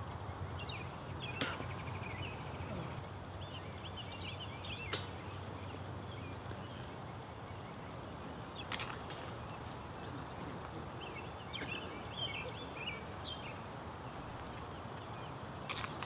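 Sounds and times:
birds chirping: 0.1 - 16.0
disc striking basket chains: 8.7 - 10.8, 15.7 - 16.0.

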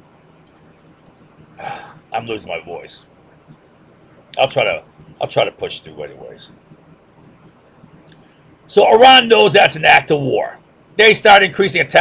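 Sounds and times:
high-pitched electronic whine: 0.0 - 12.0
man breathing: 1.6 - 2.0.

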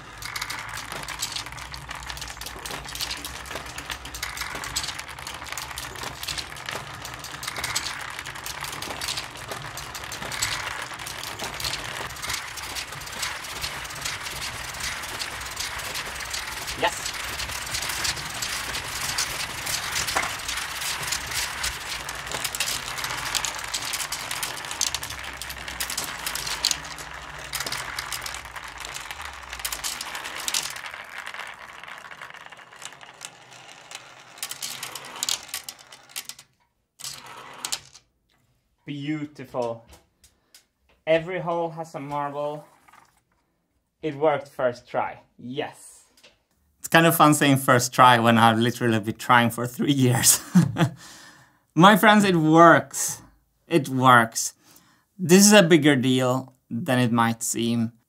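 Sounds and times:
steel marbles clattering: 0.0 - 38.1, 46.8 - 57.9.

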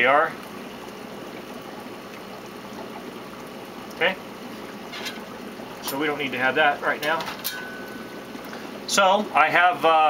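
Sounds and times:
water running and trickling: 0.0 - 10.0.

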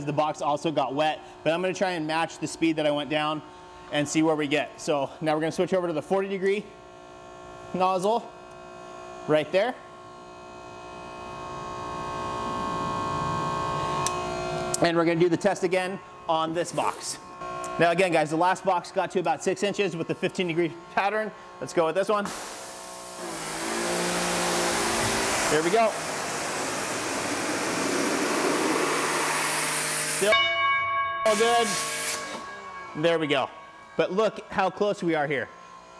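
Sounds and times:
pressure washer motor hum: 16.2 - 30.3.

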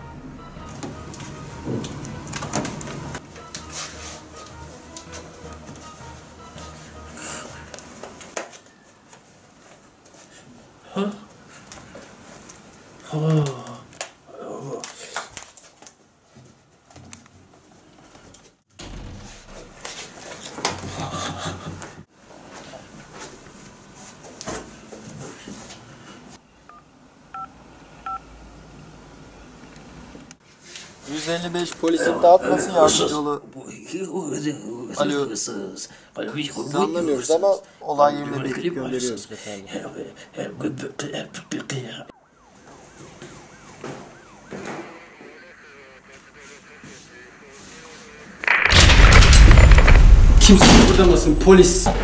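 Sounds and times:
faint police siren: 0.0 - 7.7, 41.0 - 48.5
loud noisy burst: 46.1 - 51.6.

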